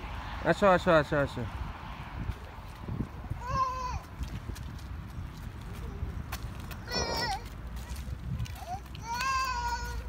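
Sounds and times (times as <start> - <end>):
toddler calling: 3.4 - 4.1, 6.8 - 7.5, 8.6 - 10.0.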